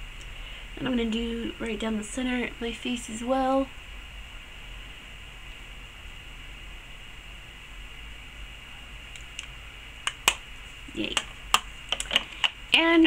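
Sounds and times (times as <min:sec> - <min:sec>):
low room hiss: 0:00.0 - 0:13.0.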